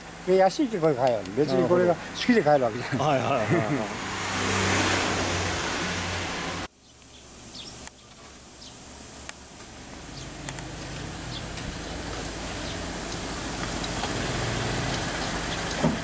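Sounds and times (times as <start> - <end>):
vehicle engine running: 8.5 - 16.0.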